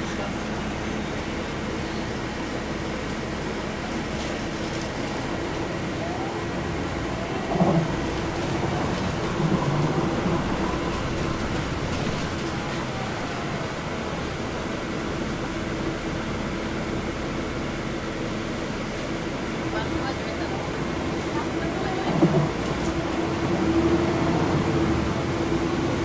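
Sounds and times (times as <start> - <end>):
bus diesel engine drone: 0.0 - 26.0.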